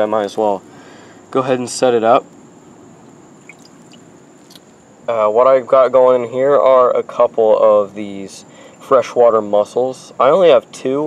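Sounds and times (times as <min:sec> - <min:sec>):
steady quiet hiss: 0:00.0 - 0:11.0
water sloshing faintly: 0:03.3 - 0:04.6
small ticks: 0:03.4 - 0:04.7.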